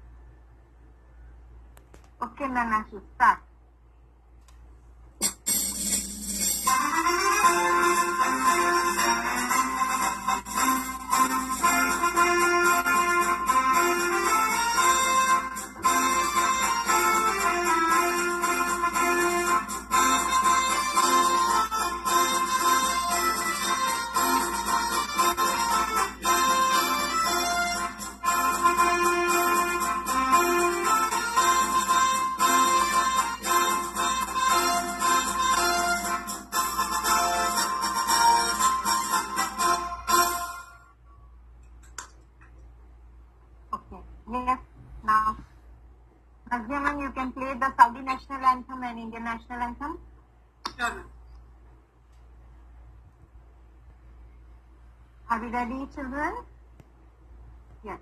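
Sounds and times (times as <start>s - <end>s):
electronic keyboard music: 5.2s - 40.8s.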